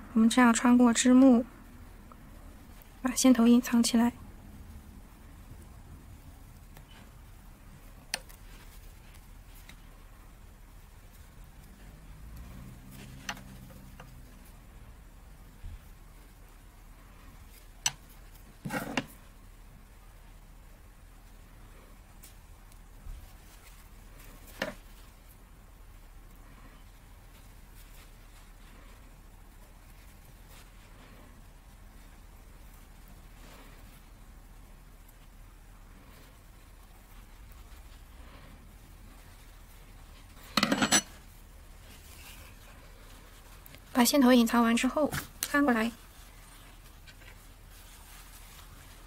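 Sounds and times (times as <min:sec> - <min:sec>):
yarn rustling: 0:00.4 - 0:49.0.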